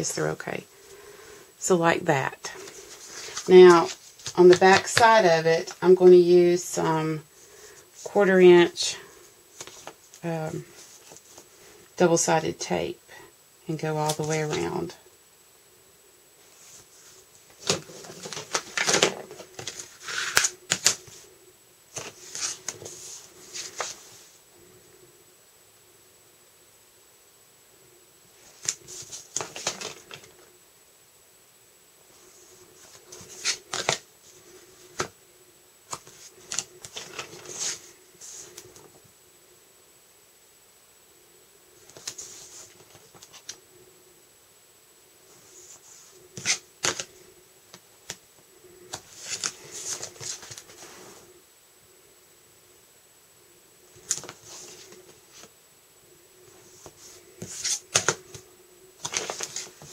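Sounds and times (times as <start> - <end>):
tape and paper handling: 17.5 - 21.2, 32.8 - 34.0, 59.0 - 59.9.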